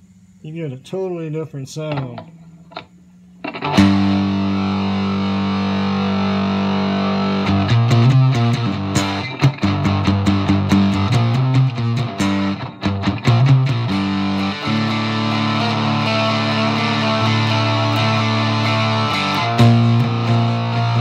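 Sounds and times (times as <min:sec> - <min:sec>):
picked guitar riff: 0:01.8 - 0:21.0
guitar chord ringing: 0:03.4 - 0:21.0.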